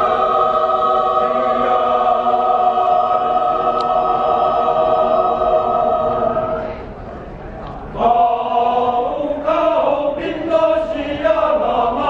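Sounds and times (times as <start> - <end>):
mixed choir singing in harmony: 0.0 - 7.0, 7.9 - 12.0.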